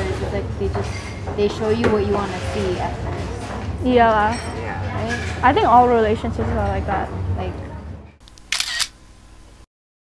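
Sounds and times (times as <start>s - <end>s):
phone camera shutter click: 8.2s - 9.0s.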